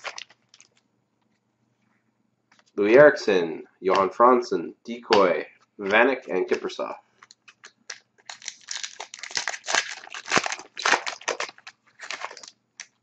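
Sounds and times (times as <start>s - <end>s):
foil wrapper crinkling: 0.0s - 0.8s, 7.2s - 13.0s.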